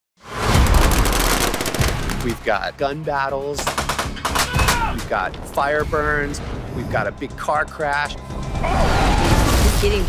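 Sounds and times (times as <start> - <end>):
rapid automatic gunfire: 0.7 - 2.3.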